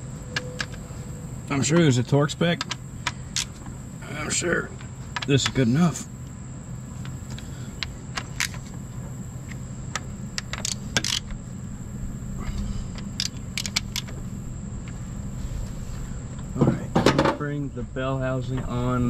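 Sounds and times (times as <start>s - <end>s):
low hum: 0.0s - 19.0s
ratchet clicking: 10.4s - 11.4s, 13.0s - 14.2s.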